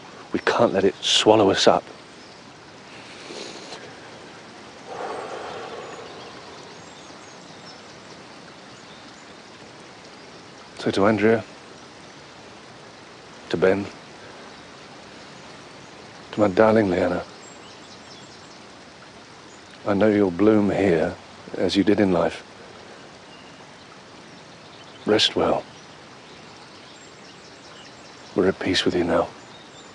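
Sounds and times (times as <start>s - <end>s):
soft background hiss: 0.0s - 29.9s
faint bird chirps: 0.3s - 12.5s, 13.1s - 20.4s, 22.9s - 29.9s.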